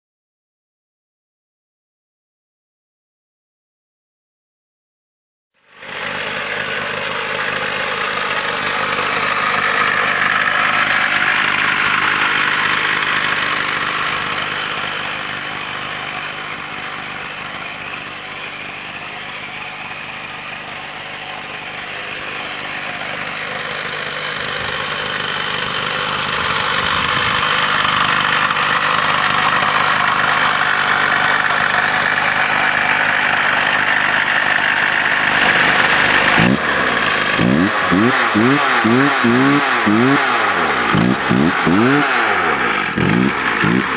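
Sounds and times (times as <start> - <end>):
two-stroke chainsaw engine running: 5.6 - 43.9.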